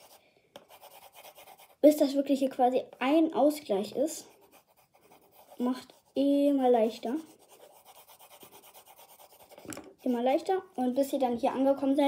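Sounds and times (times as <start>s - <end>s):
pencil shading on paper: 0.0s - 2.2s, 4.0s - 10.5s.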